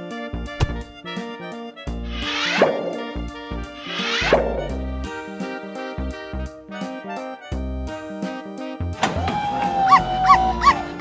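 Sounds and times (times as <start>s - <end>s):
light background music with beat: 0.0s - 11.0s.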